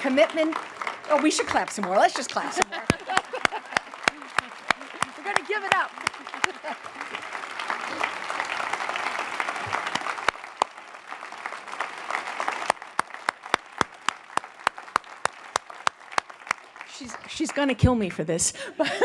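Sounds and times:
sharp hand claps: 0:00.0 - 0:17.8
audience applause: 0:00.0 - 0:18.0.

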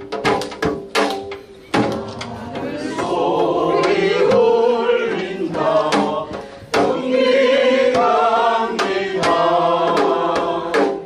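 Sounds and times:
sharp percussive hits: 0:00.0 - 0:11.0
person singing: 0:01.7 - 0:10.8.

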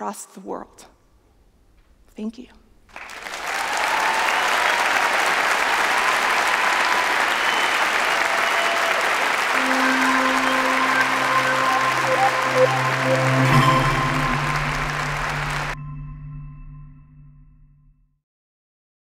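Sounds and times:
audience applauding: 0:02.9 - 0:15.8
closing music notes: 0:09.5 - 0:15.8.

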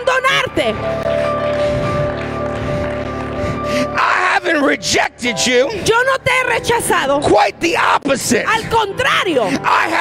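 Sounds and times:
electronic keyboard chords: 0:00.0 - 0:07.7.

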